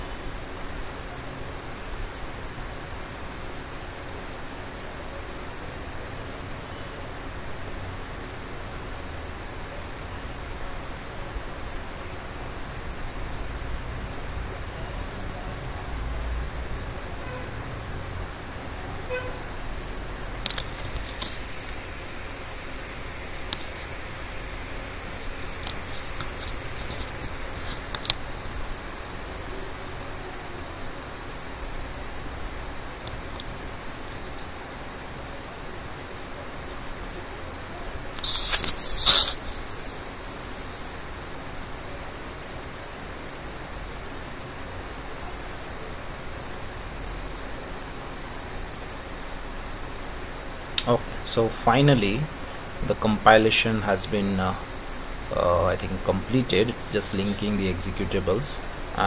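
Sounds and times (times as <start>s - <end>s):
background hiss: 0.0s - 59.0s
faint clicks: 20.4s - 21.8s, 25.3s - 28.6s
high-pitched rustle: 38.1s - 40.9s.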